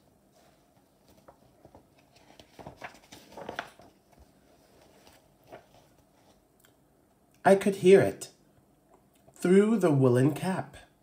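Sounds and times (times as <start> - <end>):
book page turning: 0.3 - 6.4.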